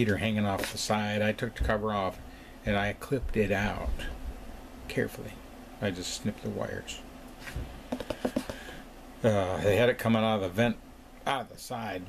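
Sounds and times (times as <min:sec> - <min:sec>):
faint clicks and taps: 0:07.5 - 0:08.8.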